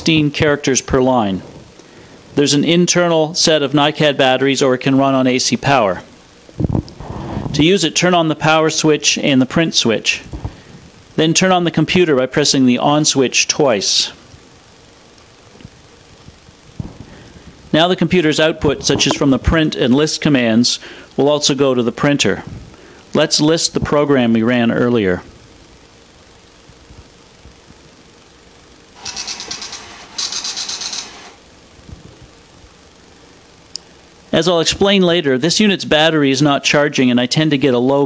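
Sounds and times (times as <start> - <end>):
faint low hum: 0.0 - 38.0
dot-matrix printer buzzing: 28.9 - 31.6.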